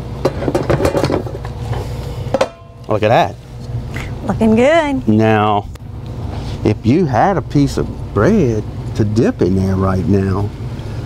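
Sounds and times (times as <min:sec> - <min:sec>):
steady low hum: 0:00.0 - 0:11.0
metal cookware clinking: 0:02.4 - 0:02.9.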